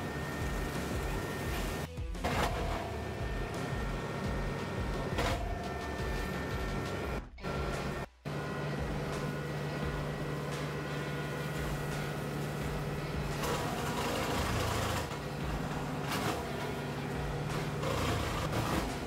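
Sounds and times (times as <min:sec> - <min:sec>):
tractor engine hum: 0:02.5 - 0:19.0.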